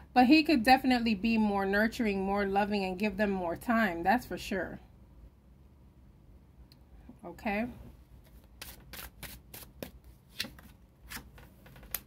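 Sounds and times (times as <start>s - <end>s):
cards being shuffled: 8.2s - 12.0s.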